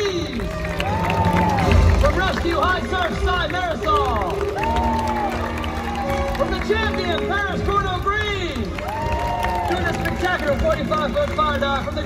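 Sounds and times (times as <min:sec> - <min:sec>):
audience clapping and cheering: 0:00.0 - 0:12.0.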